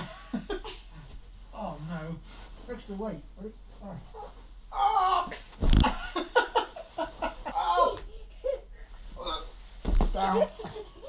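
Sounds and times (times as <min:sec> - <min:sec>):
thump onto mattress: 0:05.5 - 0:06.1, 0:09.8 - 0:10.3.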